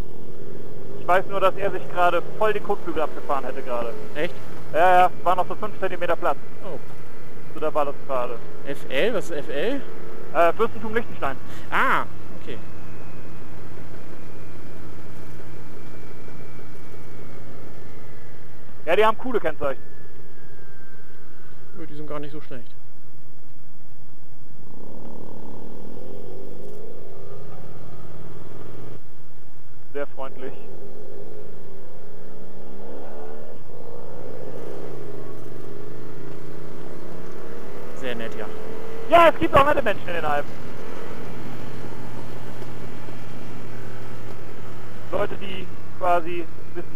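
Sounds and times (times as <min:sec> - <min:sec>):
motorcycle engine running: 0:00.0 - 0:19.0, 0:22.8 - 0:46.9
faint high whine: 0:00.0 - 0:46.9
wind and road noise: 0:00.0 - 0:46.9
wind rushing: 0:30.6 - 0:39.2.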